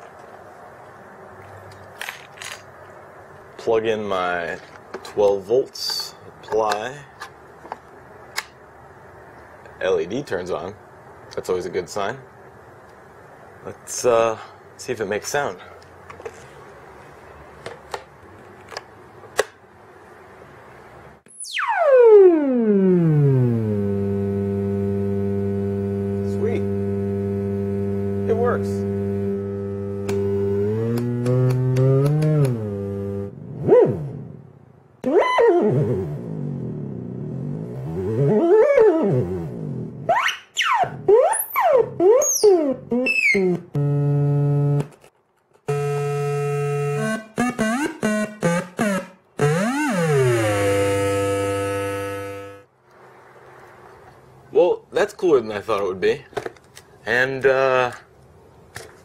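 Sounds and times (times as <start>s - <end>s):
buzzy electronic tone sweeping: 21.4s - 34.1s, 45.7s - 52.7s.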